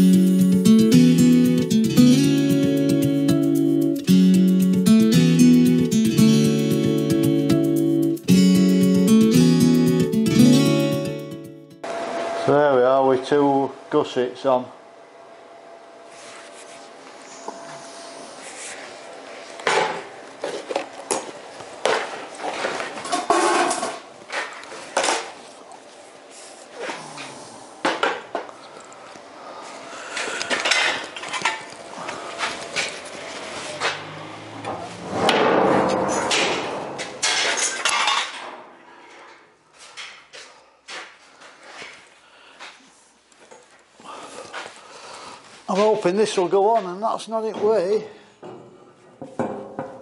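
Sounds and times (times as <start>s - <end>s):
steel parts clanking: 35.2s - 38.6s.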